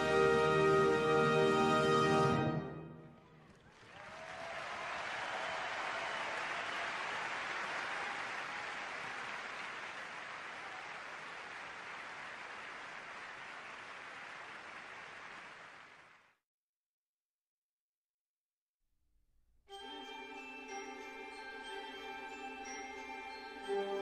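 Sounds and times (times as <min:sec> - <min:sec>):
audience applauding: 0:03.2 - 0:16.3.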